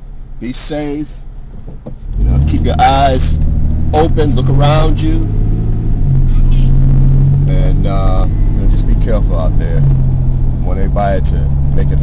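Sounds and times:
car engine and road drone: 0.0 - 12.0
man speaking: 0.4 - 1.2, 2.3 - 3.4, 4.0 - 5.3, 7.4 - 9.9, 10.6 - 12.0.

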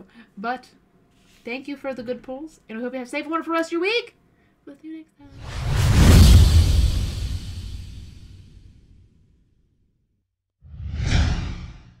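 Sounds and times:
whoosh: 5.3 - 8.7, 10.7 - 12.0.

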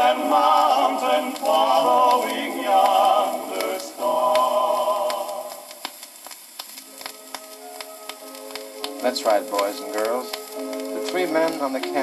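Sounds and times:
record surface hiss and crackle: 0.0 - 12.0
quiet held musical notes: 6.7 - 12.0.

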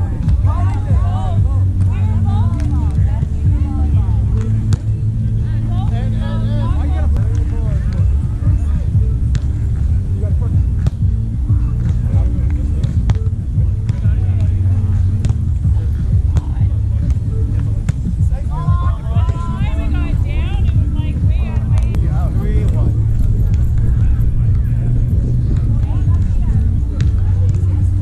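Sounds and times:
background music: 0.0 - 28.0
steady low rumble: 0.0 - 28.0
hands slapping volleyball: 9.3 - 9.6, 11.8 - 14.6, 15.2 - 15.6, 21.6 - 26.4, 27.0 - 27.7.

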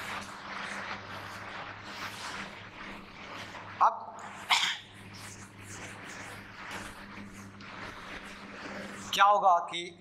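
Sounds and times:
duster rubbing whiteboard: 0.0 - 9.7.

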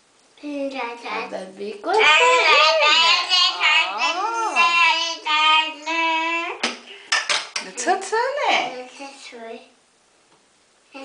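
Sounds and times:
toddler babbling sing-song: 2.0 - 6.6.

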